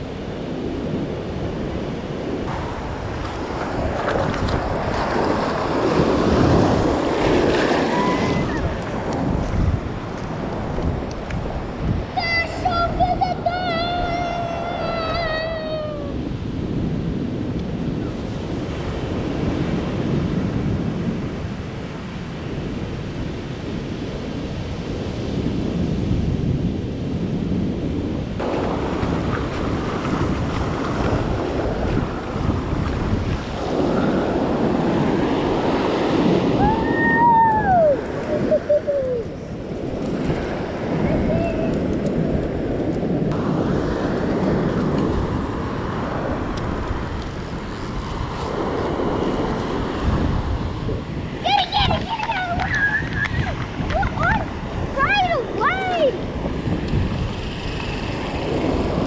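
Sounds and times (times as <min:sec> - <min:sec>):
ocean surf breaking on beach: 0:00.0 - 0:59.0
wind buffeting microphone: 0:00.0 - 0:59.0.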